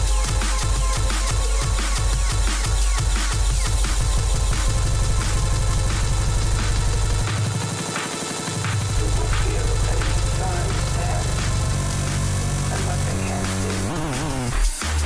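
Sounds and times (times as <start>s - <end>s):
bass-heavy electronic dance music: 0.0s - 15.0s.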